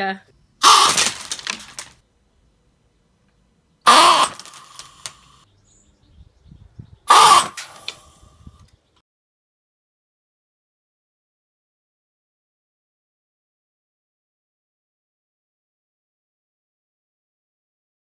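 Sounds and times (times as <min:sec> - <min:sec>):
gas shell blast with duck-call cry: 0:00.6 - 0:01.8, 0:03.9 - 0:05.3, 0:07.1 - 0:08.2.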